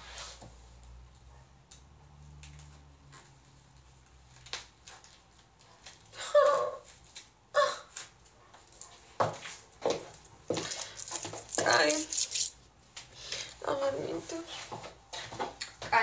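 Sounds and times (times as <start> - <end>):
woman speaking: 11.5 - 12.2, 13.6 - 14.7.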